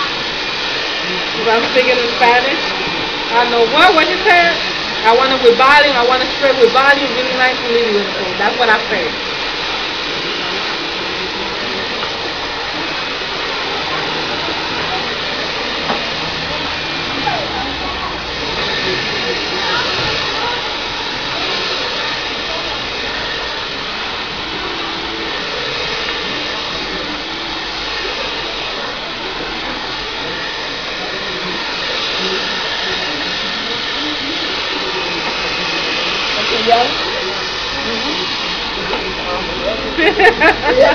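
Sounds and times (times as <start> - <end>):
hair dryer running: 0.0 - 40.9.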